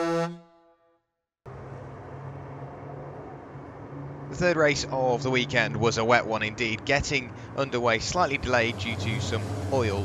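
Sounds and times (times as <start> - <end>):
racing truck engines droning: 1.5 - 10.0.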